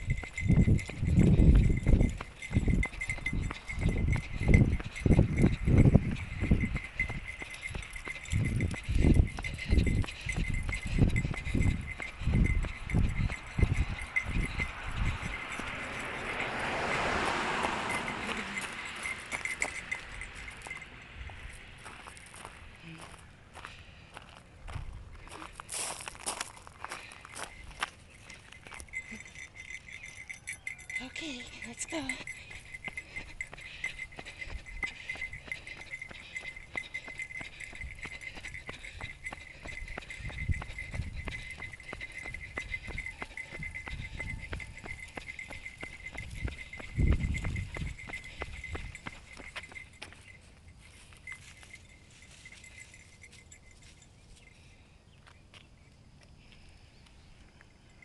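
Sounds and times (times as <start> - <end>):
footsteps: 0.0 - 54.0.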